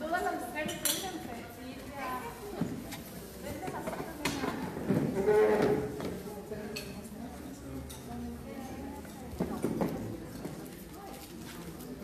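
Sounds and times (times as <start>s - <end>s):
voices in a large room: 0.0s - 12.0s.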